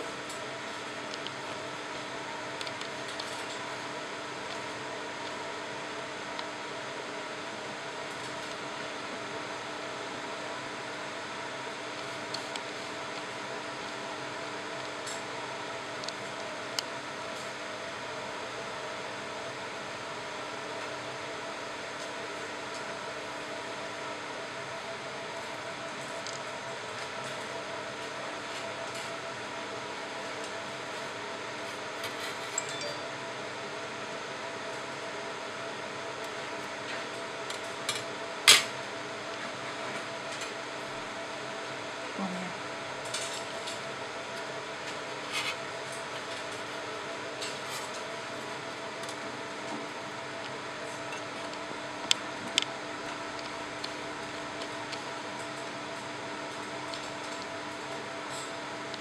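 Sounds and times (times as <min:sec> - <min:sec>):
cooling fan humming: 0:00.0 - 0:59.0.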